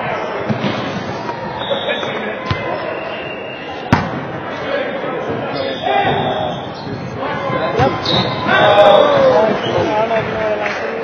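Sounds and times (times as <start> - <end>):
echoing gym hubbub: 0.0 - 11.0.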